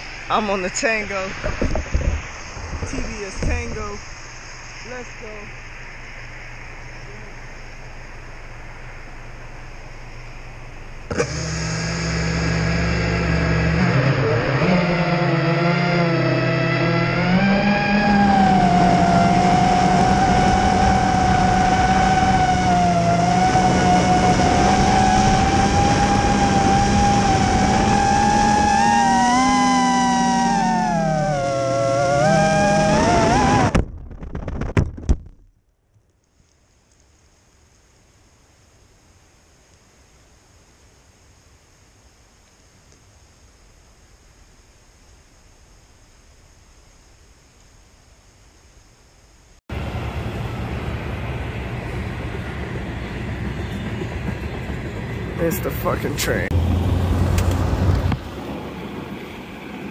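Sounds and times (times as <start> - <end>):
quadcopter motors whining: 11.0 - 33.7.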